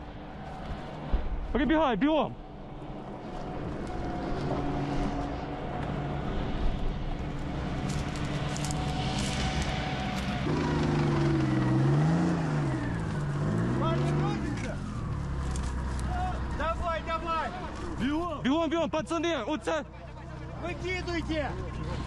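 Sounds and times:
vehicle engine revving: 2.7s - 18.4s.

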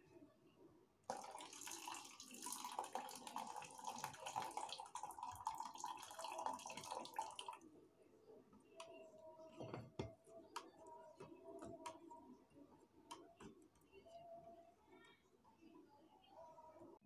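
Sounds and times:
hot water pouring into a glass: 1.1s - 7.6s.

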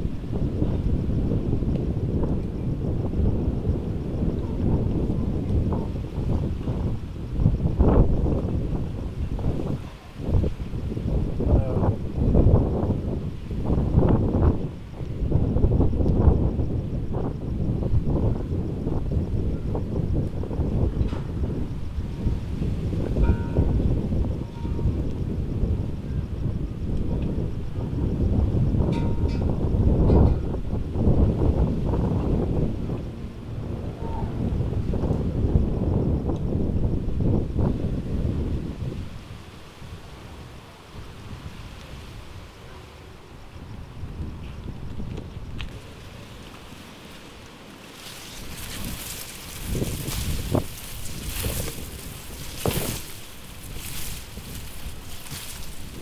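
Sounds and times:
wind gusting against microphone: 0.0s - 56.0s.

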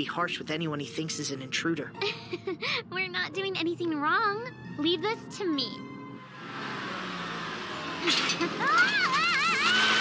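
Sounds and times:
car engine and tyres: 0.0s - 10.0s.

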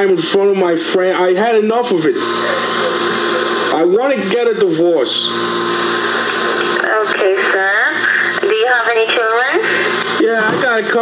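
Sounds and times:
recorded phone call speech: 0.0s - 11.0s
steady low hum: 0.2s - 11.0s.

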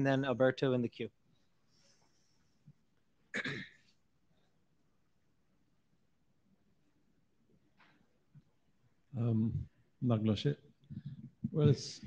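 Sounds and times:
man clearing his throat: 3.3s - 3.9s.

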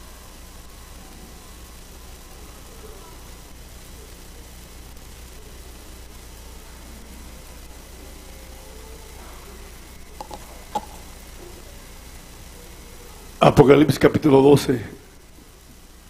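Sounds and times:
sound system hum and hiss: 0.0s - 16.0s.

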